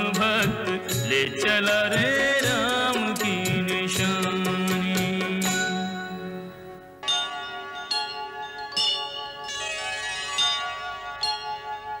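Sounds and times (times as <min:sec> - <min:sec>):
bell chimes: 0:05.5 - 0:12.0.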